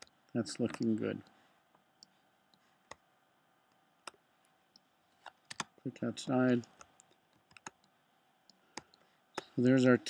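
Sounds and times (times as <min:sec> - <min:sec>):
computer mouse clicks: 0:00.0 - 0:00.9, 0:04.8 - 0:05.8, 0:06.6 - 0:09.6.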